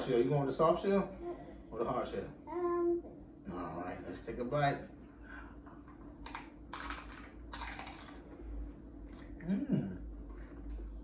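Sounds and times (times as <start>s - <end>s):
taco shell crunching: 6.2s - 8.2s.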